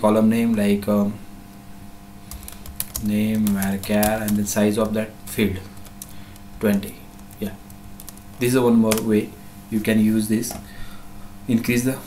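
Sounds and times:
computer keyboard typing: 0:02.3 - 0:05.0, 0:05.6 - 0:09.1.

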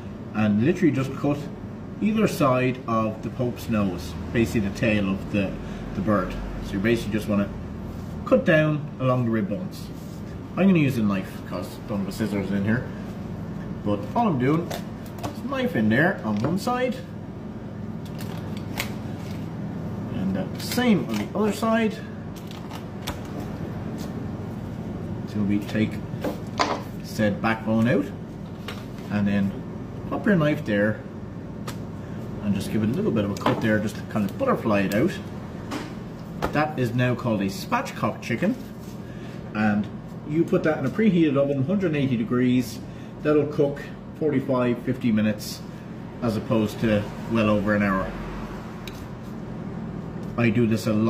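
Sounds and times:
machinery hum: 0:00.0 - 0:51.0.

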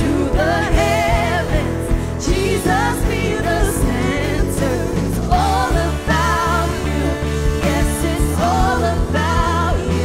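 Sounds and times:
women singing into microphones: 0:00.0 - 0:10.0
worship band playing: 0:00.0 - 0:10.0.

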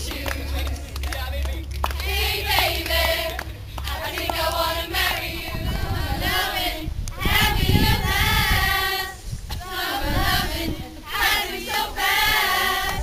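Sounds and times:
female voices singing as a choir: 0:00.0 - 0:00.8, 0:02.0 - 0:13.0.

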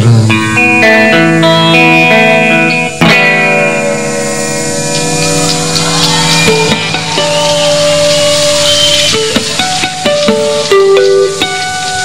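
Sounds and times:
electric guitar notes: 0:00.0 - 0:12.0
live rock band playing: 0:00.0 - 0:12.0.

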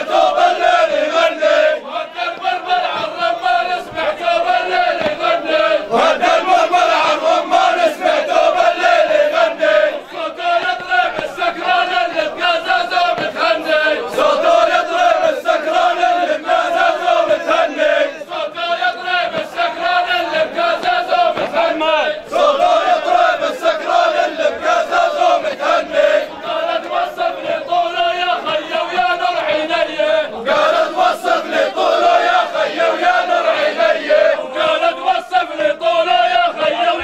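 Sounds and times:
men chanting in unison: 0:00.0 - 0:37.0
short sharp beats: 0:19.2 - 0:22.4.

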